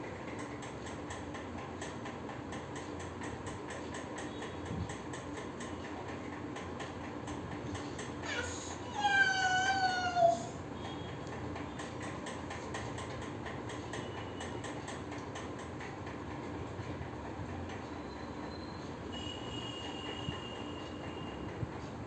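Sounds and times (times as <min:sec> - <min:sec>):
low background hum: 0:00.0 - 0:22.0
toddler squealing: 0:08.2 - 0:10.5.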